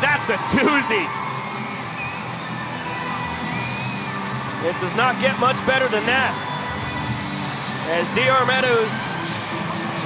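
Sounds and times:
crowd cheering roar: 0.0s - 5.3s
music playing: 0.0s - 10.0s.

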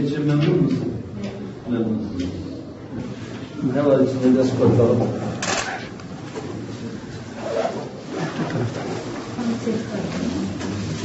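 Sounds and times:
faint low voices: 0.0s - 11.0s.

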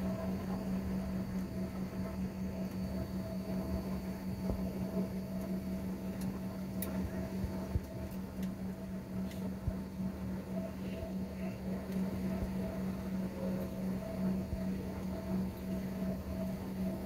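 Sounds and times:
airliner cabin low hum: 0.0s - 17.0s
faint clicks: 5.4s - 7.0s.

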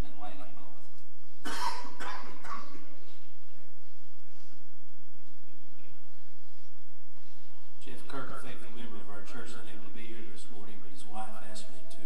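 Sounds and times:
person coughing: 1.4s - 3.0s.

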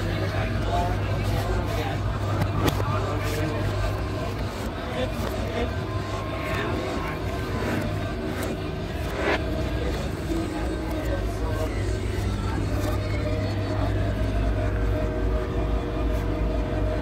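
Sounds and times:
indistinct voices: 0.0s - 17.0s
steady low hum: 0.0s - 17.0s.

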